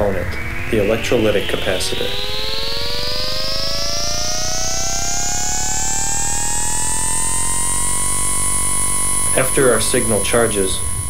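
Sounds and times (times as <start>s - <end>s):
low steady hum: 0.0s - 11.0s
rising synthesized tones: 0.0s - 11.0s.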